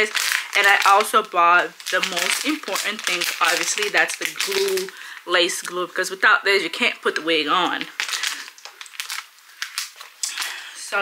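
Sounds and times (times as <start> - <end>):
packaging rustling and crinkling: 0.0 - 5.8, 7.2 - 10.6.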